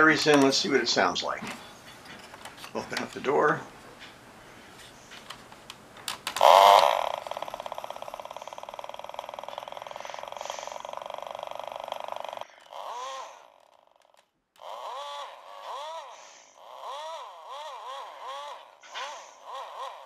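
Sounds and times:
toy car buzzing rattle: 0:06.1 - 0:20.0
toy short rising-and-falling whines: 0:06.4 - 0:20.0.

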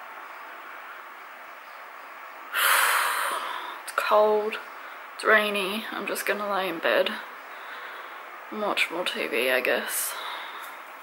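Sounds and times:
faint room hiss: 0:00.0 - 0:11.0.

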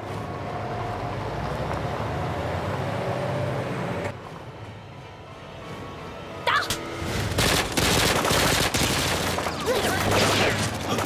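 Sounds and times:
heavy gunfire volley: 0:07.3 - 0:11.0.

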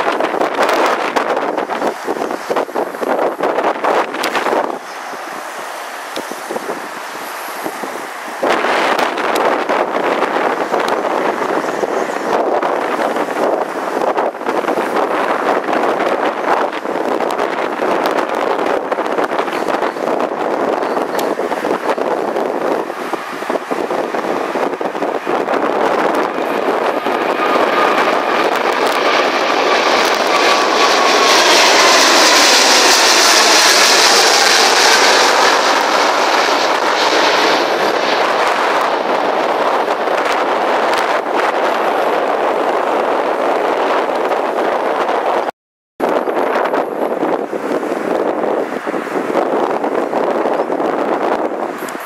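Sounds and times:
jet engines roaring: 0:00.0 - 0:52.0
wind buffeting microphone: 0:00.0 - 0:52.0.

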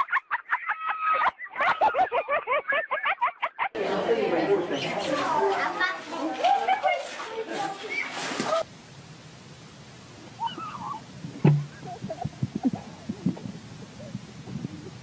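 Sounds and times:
children's excited voices and squeals: 0:04.8 - 0:08.7, 0:10.4 - 0:11.0
sharp knock: 0:11.4 - 0:11.8.

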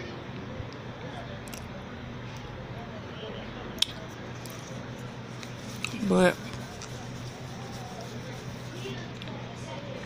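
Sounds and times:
low steady hum: 0:00.0 - 0:10.0
chewing cornstarch: 0:01.4 - 0:01.7, 0:03.8 - 0:09.4.

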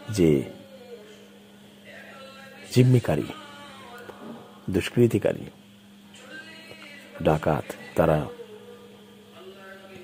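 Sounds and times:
faint background music: 0:00.0 - 0:10.0
man speaking: 0:04.7 - 0:05.6.

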